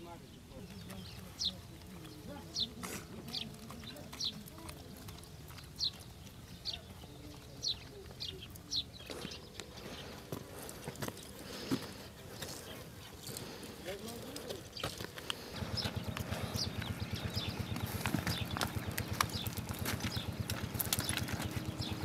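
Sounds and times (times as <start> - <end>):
bird chirping: 0.0 - 22.0
low outdoor background: 0.0 - 22.0.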